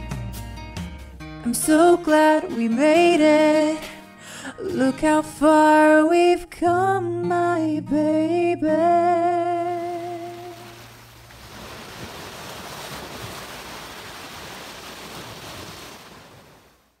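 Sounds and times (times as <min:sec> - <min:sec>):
ocean surf washing: 0:09.6 - 0:17.0.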